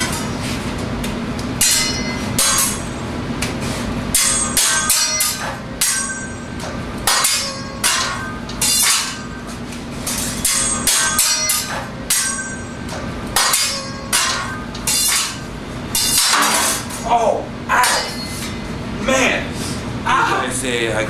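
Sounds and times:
steady low hum: 0.0 - 21.0
metal spatula clanking on griddle: 7.1 - 9.3, 13.4 - 15.4.

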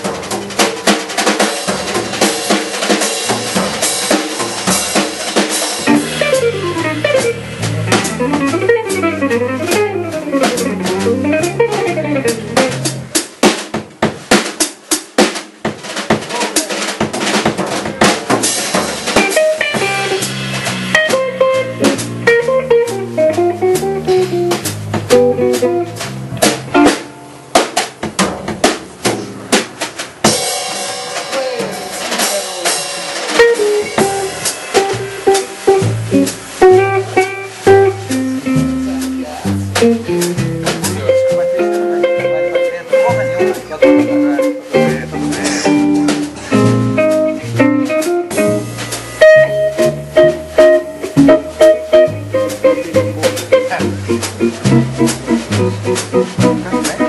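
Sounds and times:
jazz trio playing: 0.0 - 57.0
snare and rimshot strokes: 0.0 - 57.0
electric bass: 3.2 - 13.2, 17.9 - 27.6, 33.4 - 57.0.

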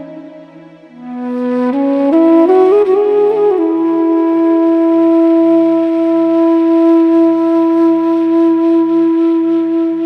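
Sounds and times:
bamboo flute long note: 0.0 - 10.0.

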